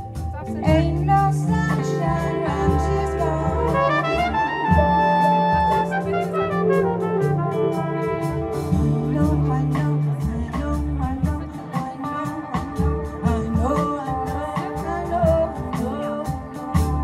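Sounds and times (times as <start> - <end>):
drums with cymbal strokes: 0.0 - 17.0
electric bass: 0.0 - 17.0
keyboard: 0.0 - 17.0
trumpet melody: 1.3 - 10.4.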